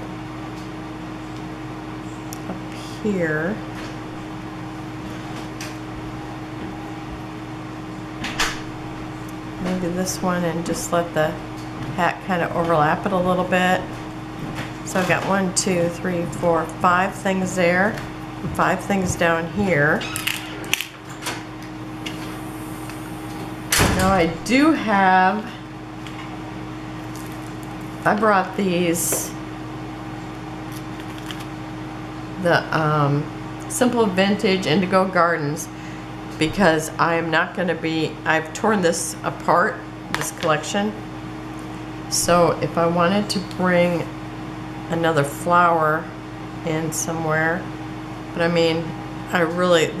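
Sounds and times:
low background hum: 0:00.0 - 0:50.0.

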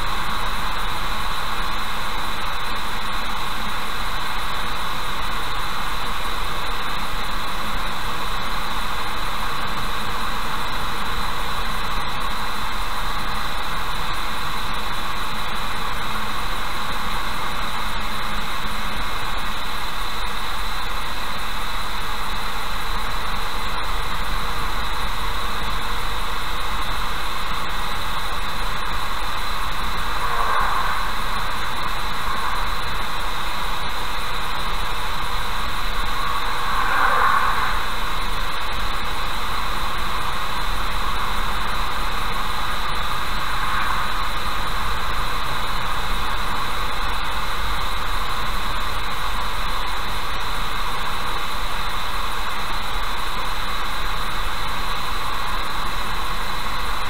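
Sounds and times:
car road noise: 0:22.2 - 0:48.7.

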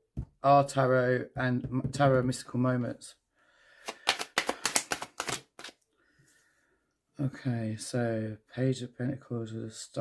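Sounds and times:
cards being shuffled: 0:03.8 - 0:05.8.

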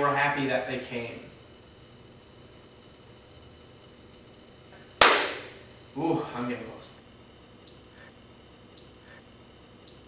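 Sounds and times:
sharp loud bang with echo: 0:05.0 - 0:05.5.

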